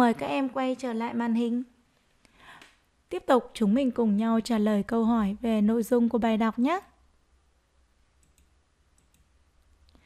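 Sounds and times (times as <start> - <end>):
computer mouse clicks: 8.2 - 10.0.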